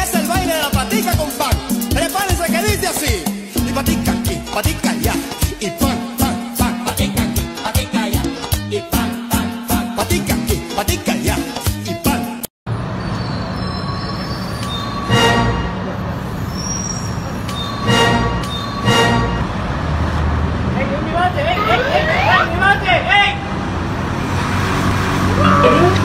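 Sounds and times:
street traffic rumble: 12.7s - 26.0s
passers-by talking: 20.7s - 23.5s, 25.2s - 26.0s.

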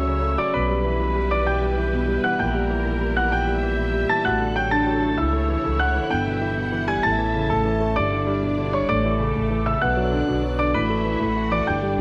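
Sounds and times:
held low bass: 0.0s - 12.0s
slow sad melody: 0.0s - 12.0s.

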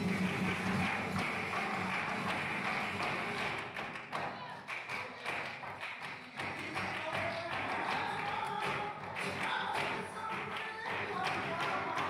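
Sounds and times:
background music: 0.0s - 3.7s.

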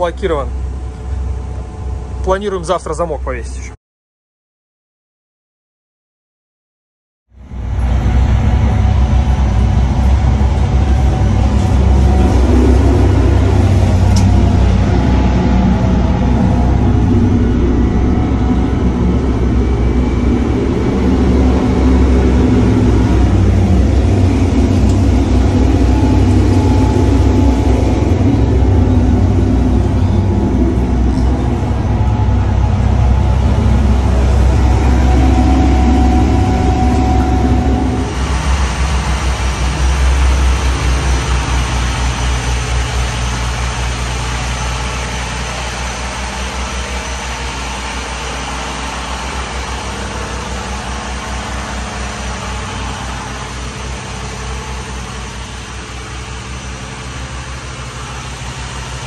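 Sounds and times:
boat engines low drone: 0.0s - 3.8s, 7.3s - 59.0s.

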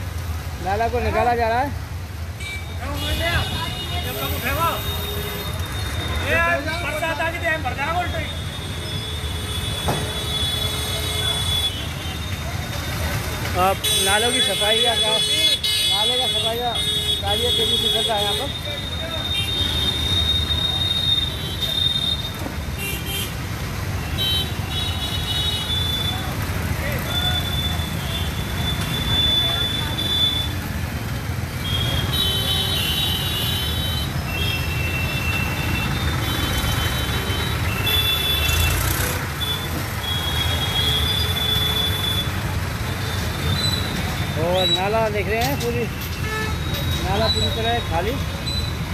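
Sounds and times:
street traffic noise: 0.0s - 48.9s
vehicle horns beeping: 31.6s - 48.9s.

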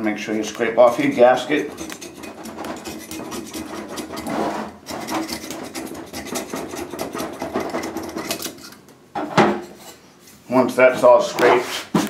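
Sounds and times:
scraping gasket off metal: 0.2s - 8.8s.

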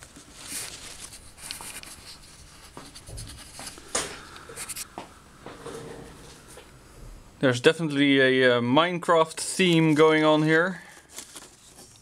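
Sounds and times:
cardboard and paper rustling: 0.0s - 4.9s, 9.6s - 12.0s.

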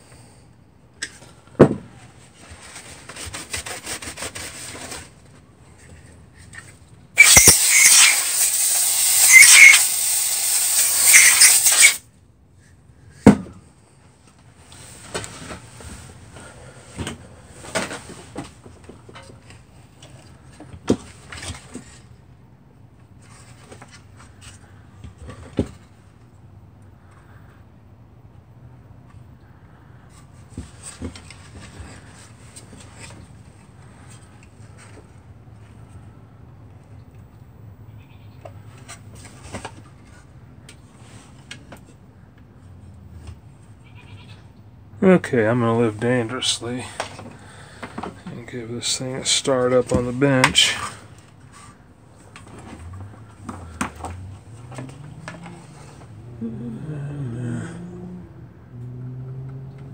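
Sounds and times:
harsh rubbing noise: 2.3s - 5.2s, 7.2s - 12.0s
rag wiping sheet metal: 7.2s - 12.0s.

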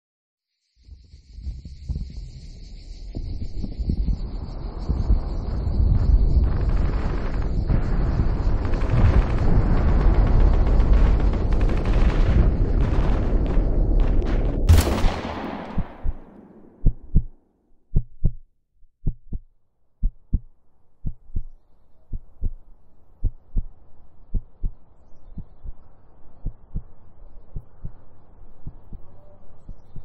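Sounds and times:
pistol shot with echo: 14.7s - 17.1s
slow heartbeat sound effect: 15.5s - 22.6s, 23.2s - 25.8s, 26.4s - 26.9s, 27.5s - 30.0s
faint hum: 21.0s - 30.0s.

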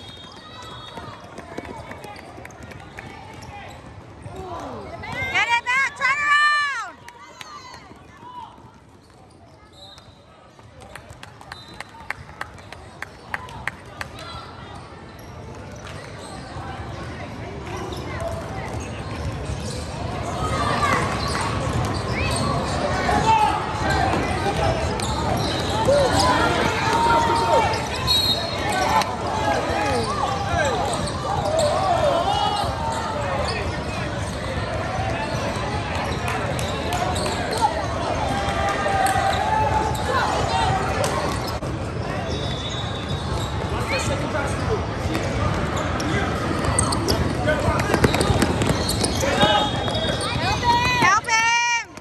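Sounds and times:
basketball bouncing on court floor: 46.7s - 51.0s.

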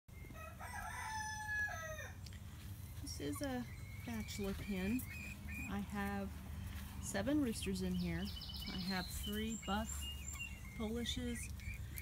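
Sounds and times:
rooster crowing: 0.2s - 2.2s.

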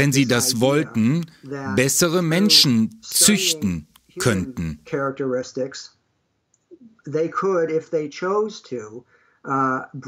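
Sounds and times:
man talking: 0.0s - 5.8s.

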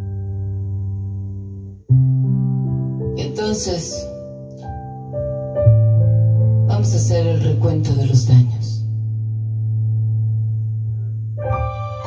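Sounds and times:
low keyboard pad note: 11.0s - 12.0s.

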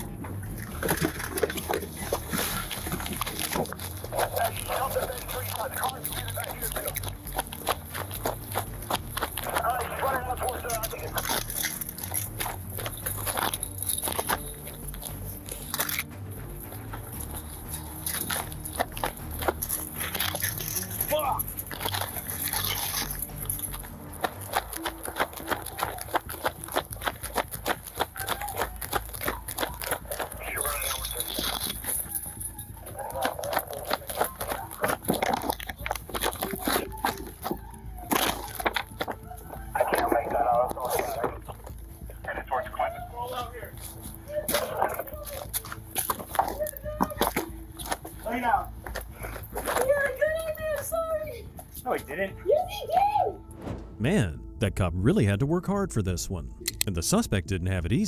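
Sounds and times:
running footfalls: 0.0s - 51.8s
gear and camera rattling: 0.0s - 51.9s
heavy breathing: 48.9s - 49.6s.

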